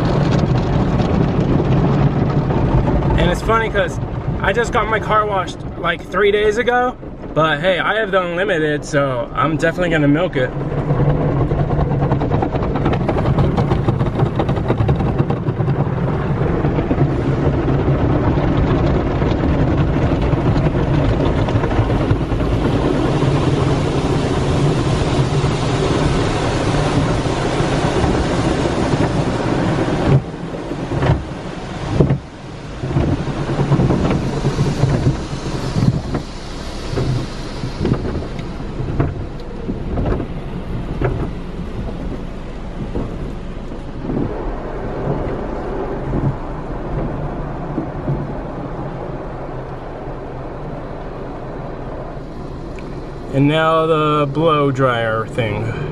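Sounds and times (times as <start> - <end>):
car wash brushes spinning: 0.0 - 55.9
water spray drumming on car: 0.0 - 55.9.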